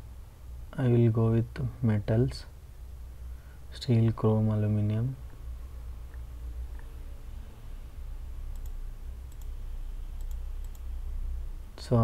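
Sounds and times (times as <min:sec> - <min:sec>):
steady low hum: 0:00.0 - 0:12.0
computer mouse clicks: 0:08.5 - 0:09.6, 0:10.2 - 0:10.9.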